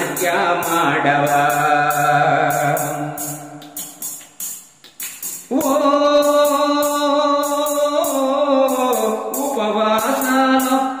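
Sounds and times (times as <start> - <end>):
man singing a long vowel: 0.0 - 3.7, 5.5 - 11.0
jingling percussion beat: 0.0 - 11.0.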